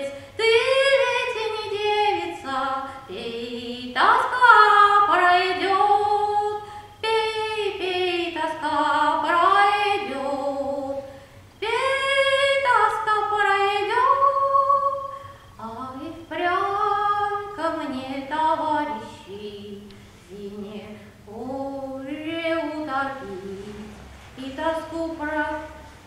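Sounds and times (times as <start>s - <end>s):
woman singing unaccompanied: 0.0s - 26.0s.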